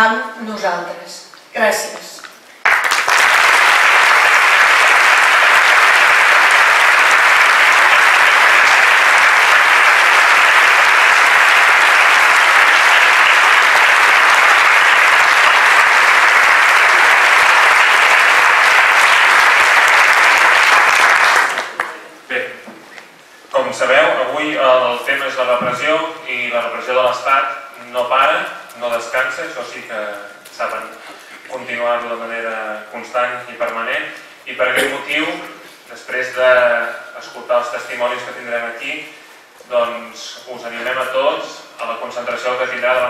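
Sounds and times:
audience applauding: 2.6 - 22.0.

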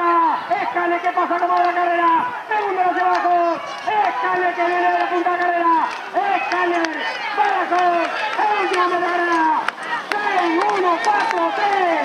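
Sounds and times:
race commentator shouting: 0.0 - 12.0.

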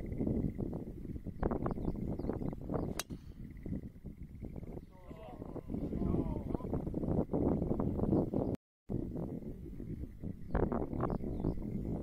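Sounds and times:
golf club striking ball: 2.8 - 3.3
murmured voices: 4.9 - 6.7.

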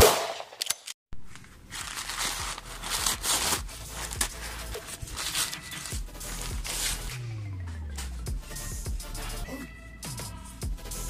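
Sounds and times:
brown paper crinkling: 1.3 - 7.1
electronic intro music: 3.7 - 11.0.

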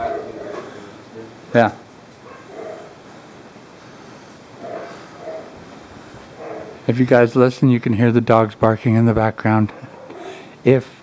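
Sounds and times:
dogs barking faintly: 0.0 - 1.4, 2.2 - 3.1, 4.4 - 7.1, 9.6 - 10.5.

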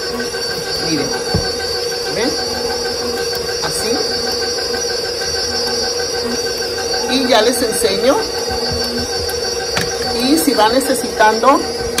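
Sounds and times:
stand mixer motor whine: 0.0 - 12.0.

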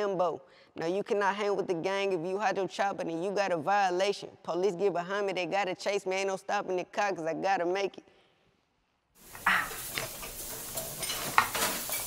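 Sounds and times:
food sizzling in a frying pan: 9.2 - 12.0
utensils clinking against pans: 9.3 - 12.0.

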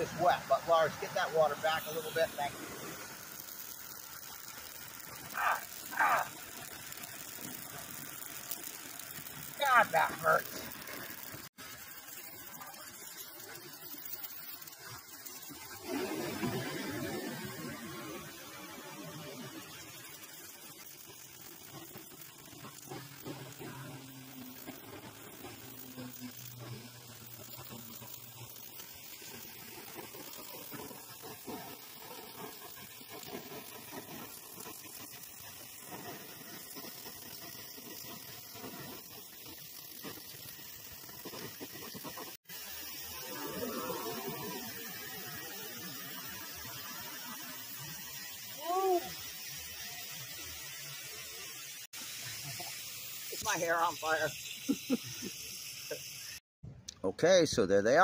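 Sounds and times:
gas torch flame hissing: 0.0 - 56.4
stone flakes crackling and popping: 0.0 - 56.4.

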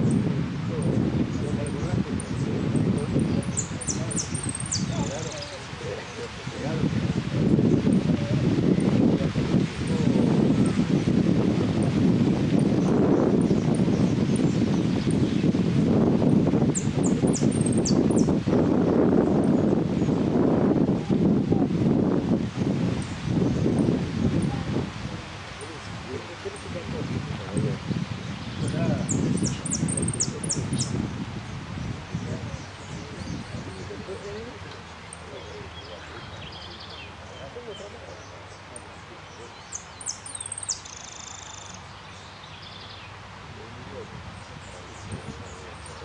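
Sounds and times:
wind on microphone: 0.0 - 46.0
finch singing: 0.8 - 6.8, 16.7 - 18.4, 27.4 - 31.0, 32.1 - 43.2.

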